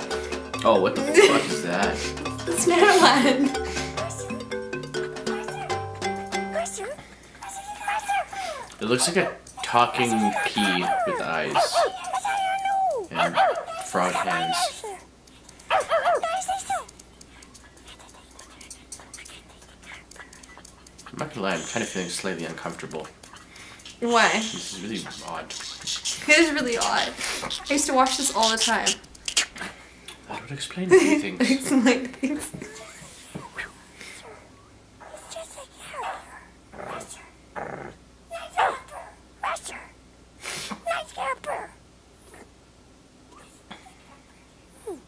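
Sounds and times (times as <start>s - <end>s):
puppet dog yipping: 5.2s - 5.8s, 6.5s - 17.0s, 23.2s - 29.6s, 35.0s - 37.2s, 38.3s - 39.8s, 40.8s - 41.8s
toddler character babbling: 5.3s - 5.8s, 6.5s - 8.6s, 10.1s - 13.1s, 16.1s - 16.9s, 40.9s - 41.8s.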